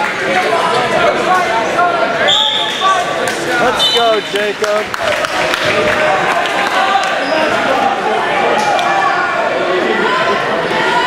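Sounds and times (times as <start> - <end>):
spectators yelling and shouting: 0.0 - 11.0
whistle blast: 2.2 - 2.8.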